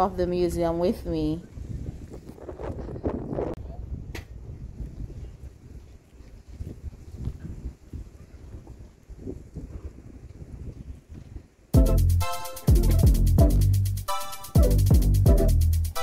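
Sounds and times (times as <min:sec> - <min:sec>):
wind buffeting microphone: 0:00.0 - 0:11.8
loud electronic music: 0:11.8 - 0:16.0.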